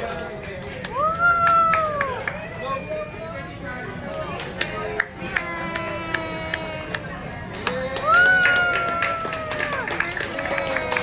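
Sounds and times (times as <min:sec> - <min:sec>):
hand claps: 0:00.0 - 0:02.4, 0:04.1 - 0:11.0
restaurant crowd chatter: 0:00.0 - 0:11.0.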